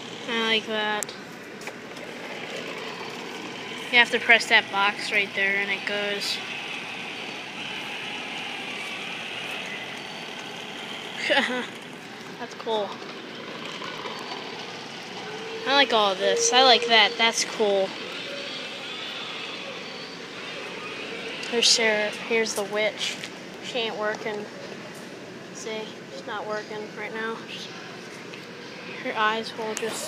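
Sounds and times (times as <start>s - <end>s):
store background hum: 0.0s - 30.0s.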